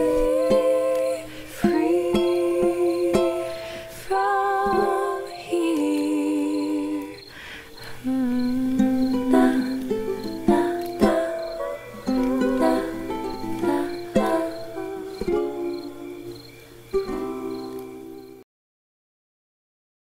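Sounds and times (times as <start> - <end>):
ukulele plucked notes and chords: 0.0 - 6.2, 8.2 - 18.4.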